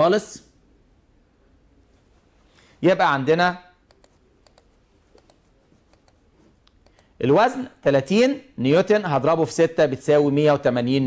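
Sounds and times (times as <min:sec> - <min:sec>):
faint clicks: 0:03.8 - 0:07.1.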